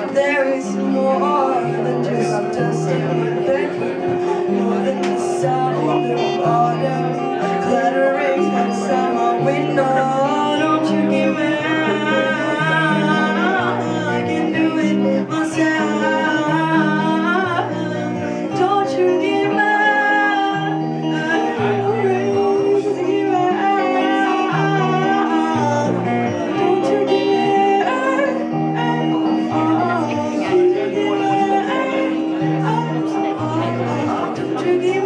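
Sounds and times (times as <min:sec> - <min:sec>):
electric guitar: 0:00.0 - 0:35.0
woman singing: 0:00.0 - 0:35.0.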